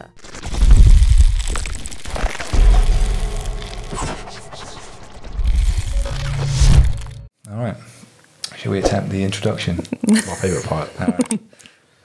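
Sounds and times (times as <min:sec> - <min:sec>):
crackling effects: 0:00.0 - 0:07.3
deep bass booms: 0:00.2 - 0:07.3
whooshing effects: 0:00.2 - 0:07.3.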